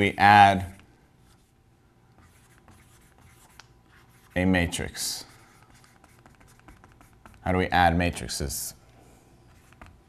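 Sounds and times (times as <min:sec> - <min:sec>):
marker squeaking on whiteboard: 0:02.2 - 0:04.8, 0:05.5 - 0:07.5.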